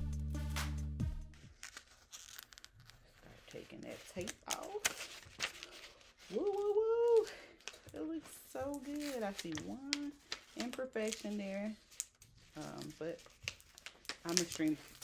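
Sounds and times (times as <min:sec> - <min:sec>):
background music with a beat: 0:00.0 - 0:01.5
paper crinkling and tearing: 0:01.4 - 0:15.0.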